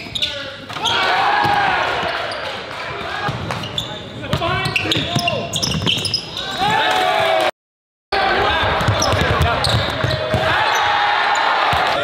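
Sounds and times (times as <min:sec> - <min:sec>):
basketball bouncing on hardwood: 0:08.8 - 0:10.5.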